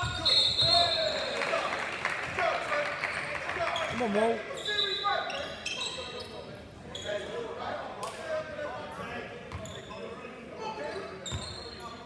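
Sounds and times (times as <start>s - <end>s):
sneaker squeaks: 0.0s - 1.4s, 4.6s - 7.4s, 9.0s - 12.0s
voices echoing in a hall: 0.0s - 12.0s.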